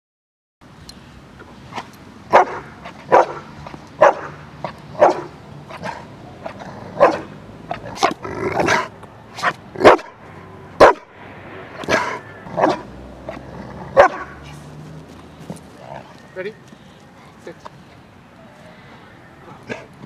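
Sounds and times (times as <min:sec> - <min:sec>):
dog barking: 0:02.3 - 0:04.4, 0:05.0 - 0:06.0, 0:07.0 - 0:07.3, 0:09.4 - 0:10.2, 0:10.8 - 0:11.1, 0:11.9 - 0:12.9, 0:13.9 - 0:14.4.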